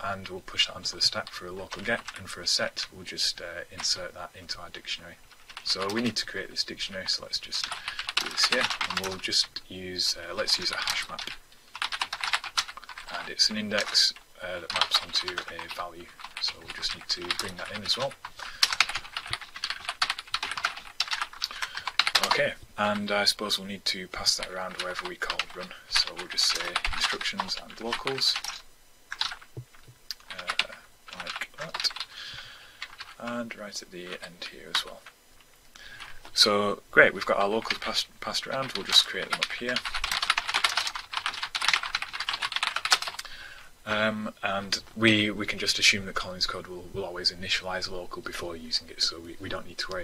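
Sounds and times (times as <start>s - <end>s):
fast typing on keyboard: 0.1s - 2.3s, 5.4s - 6.3s, 7.0s - 9.5s, 10.3s - 23.1s, 24.2s - 32.1s, 32.8s - 33.4s, 37.6s - 43.3s.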